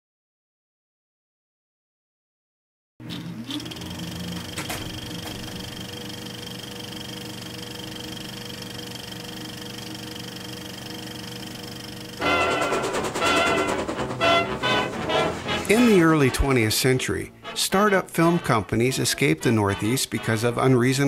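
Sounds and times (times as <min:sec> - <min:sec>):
film projector running: 0:03.0 - 0:15.9.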